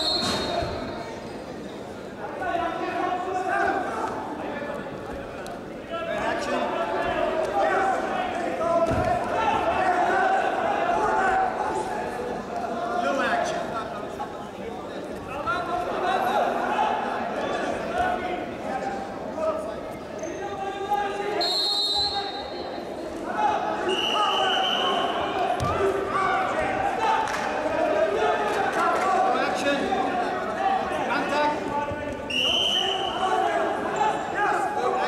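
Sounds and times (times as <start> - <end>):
high whistle tones: 0.0 - 0.8, 21.4 - 22.8, 23.9 - 25.2, 32.3 - 33.2
voices echoing in a hall: 0.0 - 35.0.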